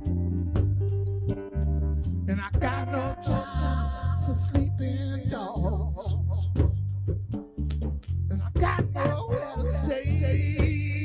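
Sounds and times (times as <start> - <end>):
drums: 0.0 - 1.5, 2.5 - 3.2, 4.3 - 11.0
deep bass notes: 0.0 - 11.0
electric guitar: 0.0 - 11.0.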